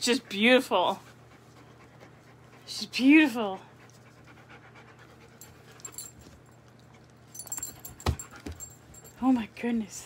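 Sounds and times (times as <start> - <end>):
dog panting: 0.0 - 9.2.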